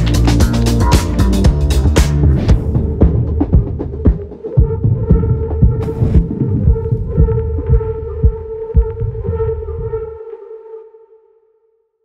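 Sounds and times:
deep low thumps: 2.4s - 10.1s.

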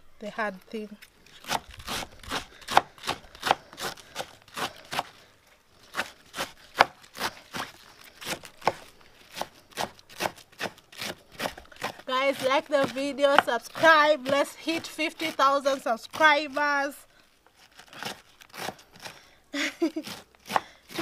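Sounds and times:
knife slicing cabbage: 1.2s - 5.2s, 5.9s - 16.7s, 17.6s - 19.2s, 19.8s - 21.0s.

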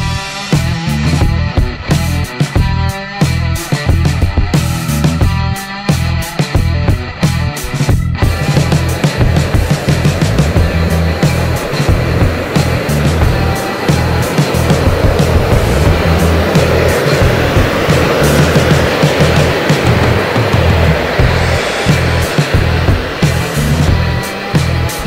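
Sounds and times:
music with steady beat: 0.0s - 25.0s
airliner flying over rushing: 8.2s - 25.0s.

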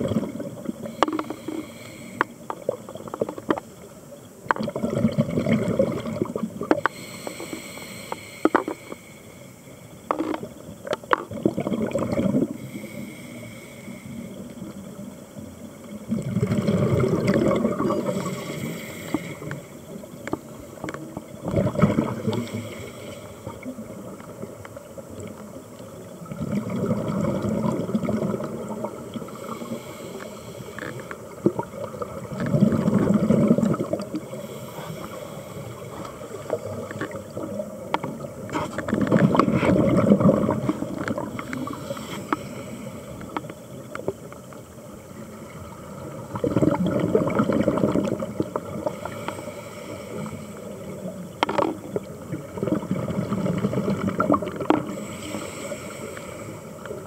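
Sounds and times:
diver breathing through regulator: 0.8s - 2.5s, 6.8s - 10.4s, 12.5s - 14.5s, 16.6s - 19.8s, 22.2s - 23.7s, 29.1s - 31.3s, 33.6s - 36.6s, 39.4s - 43.5s, 48.8s - 50.8s, 54.7s - 57.0s.

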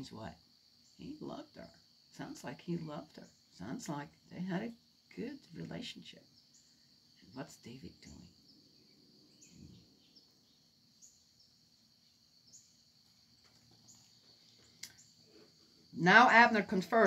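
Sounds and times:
high insect drone: 0.0s - 17.0s.

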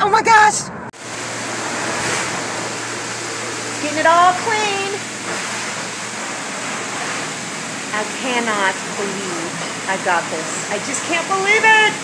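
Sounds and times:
pressure washer spraying water: 1.0s - 12.0s.

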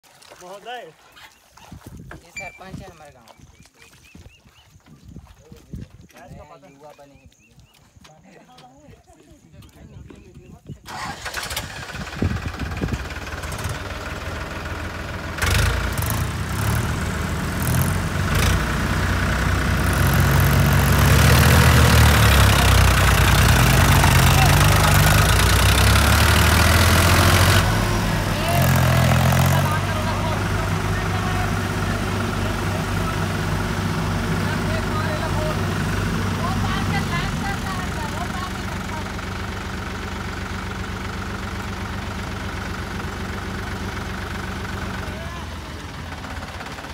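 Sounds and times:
tractor diesel engine revving: 10.9s - 46.9s.

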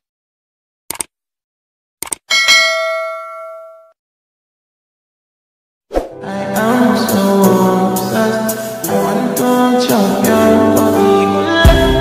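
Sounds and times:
bell-like notification ding: 2.3s - 4.0s.

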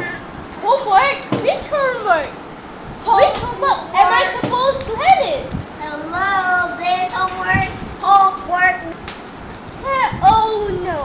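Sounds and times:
boys talking: 0.0s - 11.0s.

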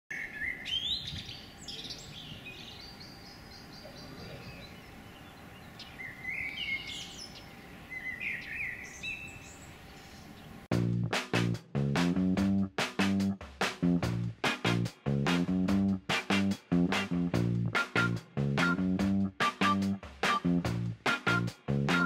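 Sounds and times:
songbirds chirping and singing: 0.1s - 10.7s.

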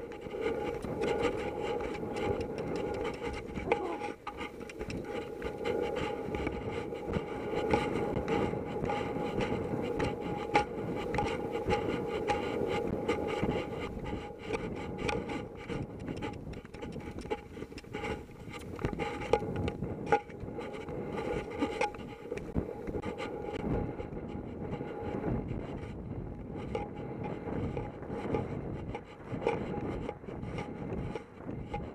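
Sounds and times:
horse hoofbeats rumbling: 0.0s - 31.9s
wind rushing over microphone: 0.0s - 31.9s.

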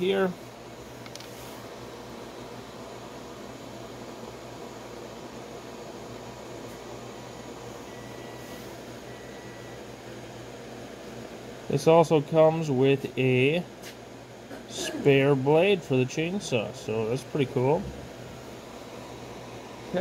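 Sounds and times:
room hiss and hum: 0.0s - 20.0s.

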